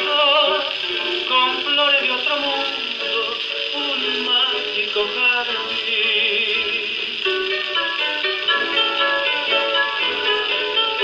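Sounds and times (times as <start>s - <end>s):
waltz on a gramophone record: 0.0s - 11.0s.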